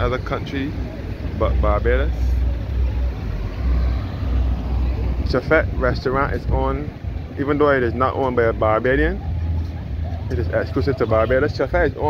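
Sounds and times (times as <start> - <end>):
cars driving by: 0.0 - 12.0.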